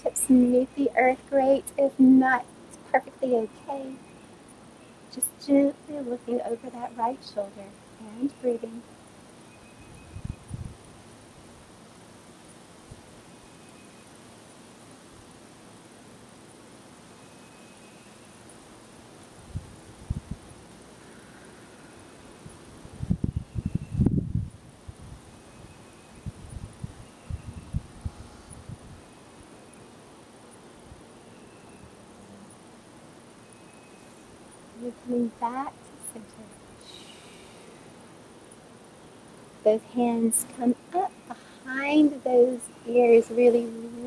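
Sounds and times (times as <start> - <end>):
high insect drone: 0.0 - 44.0
wind gusts on microphone: 9.8 - 11.0, 19.4 - 20.6, 22.4 - 29.1.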